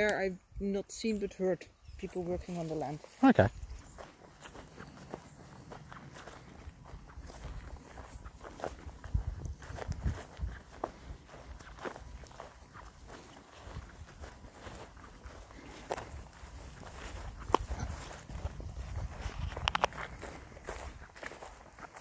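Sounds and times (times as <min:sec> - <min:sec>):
footsteps through ferns and grass: 0:01.0 - 0:22.0.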